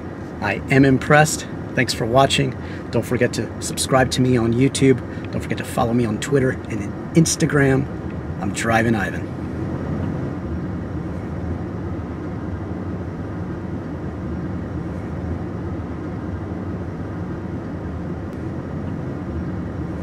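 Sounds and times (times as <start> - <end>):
vehicle rumble inside cabin: 0.0 - 20.0.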